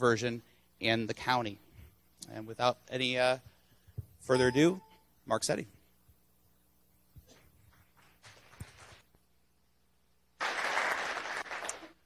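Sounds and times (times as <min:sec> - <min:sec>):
audience applauding: 0:10.4 - 0:12.0.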